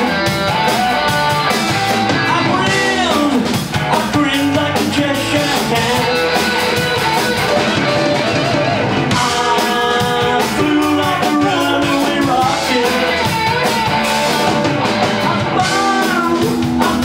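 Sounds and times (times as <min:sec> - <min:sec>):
bass guitar: 0:00.0 - 0:17.0
drum kit: 0:00.0 - 0:17.0
electric guitars: 0:00.0 - 0:17.0.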